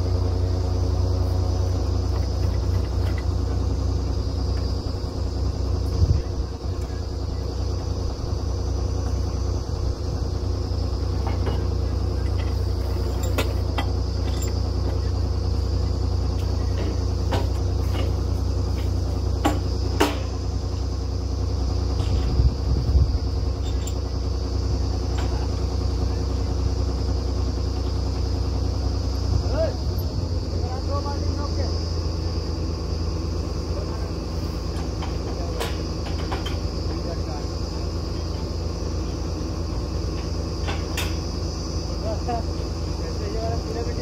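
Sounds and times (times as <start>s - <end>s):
drilling rig engine hum: 0.0s - 44.0s.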